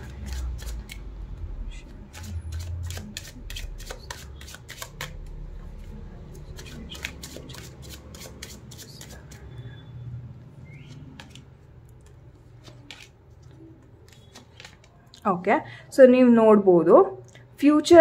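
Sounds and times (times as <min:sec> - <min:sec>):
cards being shuffled: 0:00.0 - 0:01.1, 0:01.8 - 0:05.4, 0:06.4 - 0:09.4, 0:10.8 - 0:15.2.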